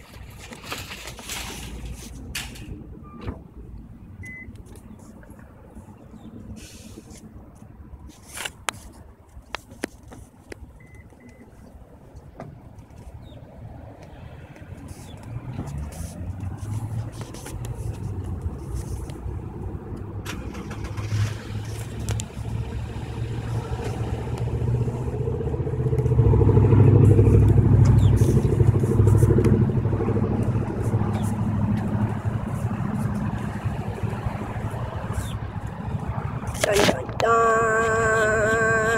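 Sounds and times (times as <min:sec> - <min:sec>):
car engine running: 0:15.0 - 0:38.9.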